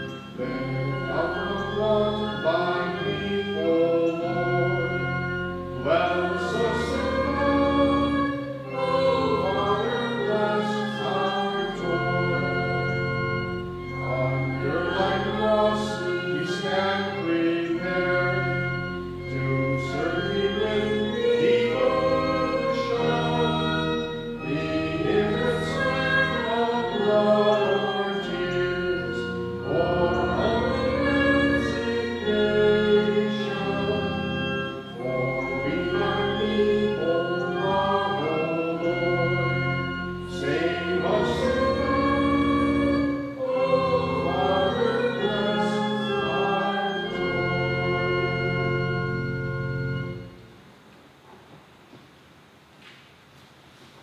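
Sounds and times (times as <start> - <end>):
people singing a hymn: 0.0 - 49.3
organ chords: 0.0 - 52.7.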